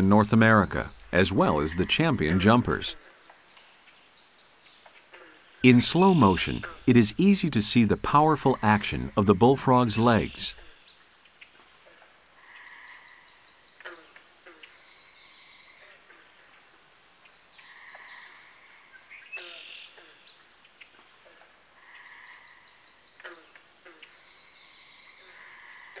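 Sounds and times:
faint bird calls: 0:00.0 - 0:07.0, 0:08.1 - 0:26.0.

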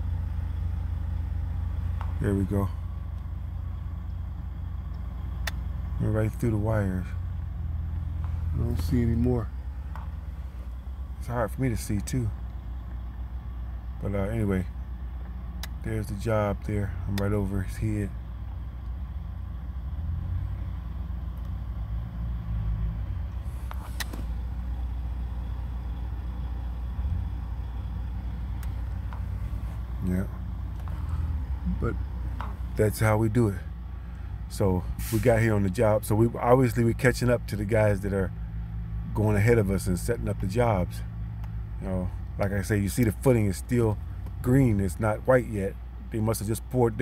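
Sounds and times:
low engine rumble: 0:00.0 - 0:47.0
faint clicks: 0:04.8 - 0:05.8
sharp click: 0:23.7 - 0:24.4.

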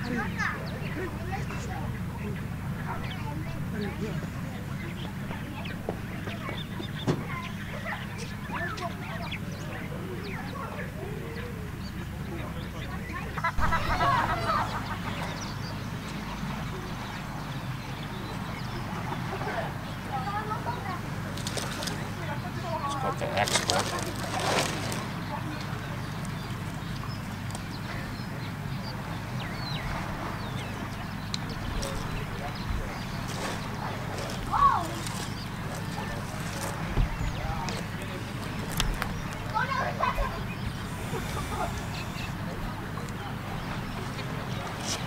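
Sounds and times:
steady low rumble: 0:00.0 - 0:20.1
birds chirping and calling: 0:00.0 - 0:45.0
steady low hum: 0:00.0 - 0:45.0
knocks and scrapes on dirt: 0:22.8 - 0:25.3, 0:32.8 - 0:43.2.

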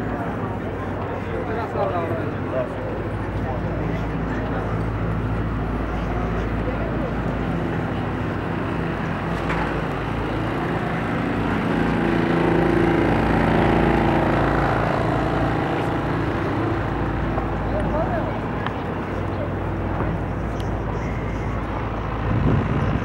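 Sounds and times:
crowd voices: 0:00.0 - 0:23.0
traffic engine hum: 0:00.0 - 0:23.0.

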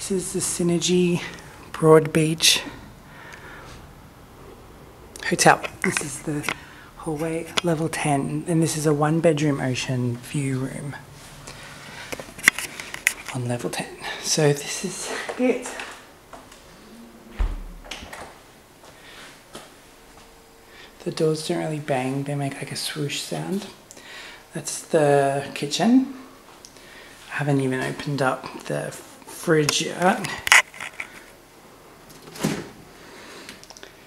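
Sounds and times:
door closing with soft thud: 0:17.2 - 0:18.4
faint clicks: 0:33.5 - 0:33.9.

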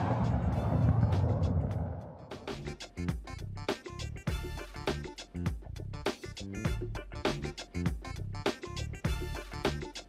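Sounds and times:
deep rumbling hit: 0:00.0 - 0:02.2
whoosh: 0:00.0 - 0:02.7.

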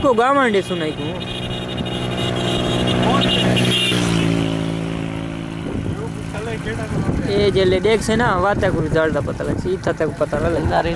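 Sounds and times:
engine running: 0:00.0 - 0:10.9.

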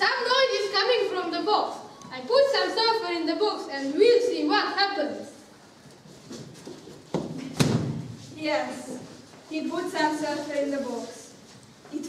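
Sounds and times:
thud: 0:07.1 - 0:08.2.

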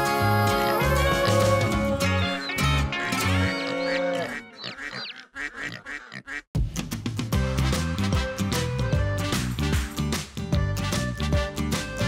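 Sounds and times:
music: 0:00.0 - 0:04.6, 0:06.6 - 0:12.0
cartoon duck quacks: 0:02.5 - 0:06.5.

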